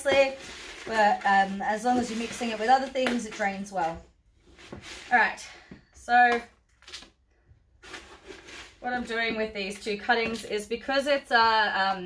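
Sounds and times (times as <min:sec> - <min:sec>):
scoop scraping potting mix: 0:00.0 - 0:05.4, 0:07.7 - 0:12.0.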